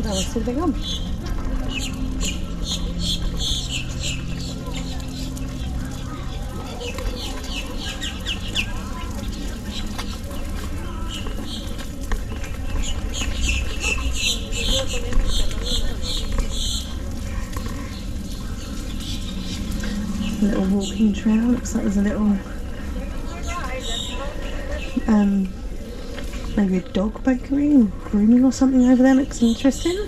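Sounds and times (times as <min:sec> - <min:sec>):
low rumble: 0:00.0 - 0:23.9
birds chirping: 0:00.0 - 0:30.0.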